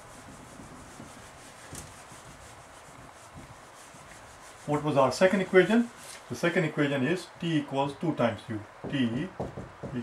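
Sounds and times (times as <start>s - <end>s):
eraser scrubbing whiteboard: 0.0s - 6.3s.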